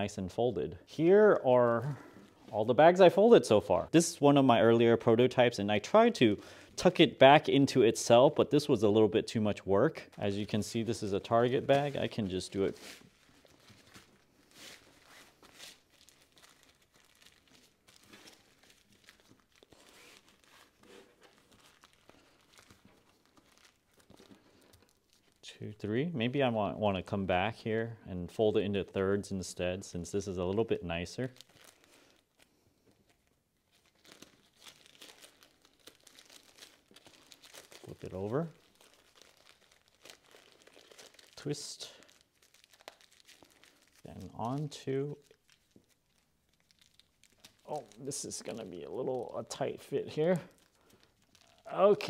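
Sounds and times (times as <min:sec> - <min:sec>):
plastic bag crinkling: 0:10.0 - 0:25.4, 0:31.0 - 0:52.0.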